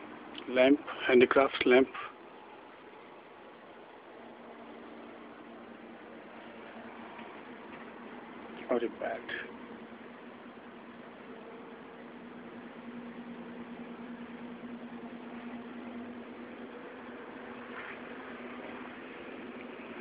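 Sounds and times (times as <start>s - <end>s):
low machine hum: 0.0s - 20.0s
steady hiss: 0.0s - 20.0s.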